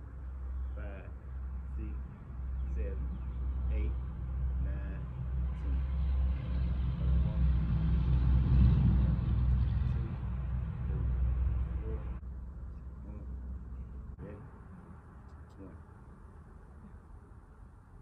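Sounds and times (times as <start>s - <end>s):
steady low rumble: 0.0s - 18.0s
car driving past: 3.2s - 15.3s.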